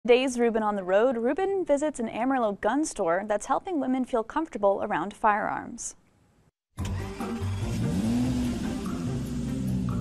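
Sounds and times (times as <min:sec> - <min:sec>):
car engine revving: 0:06.8 - 0:10.0
music: 0:06.8 - 0:10.0.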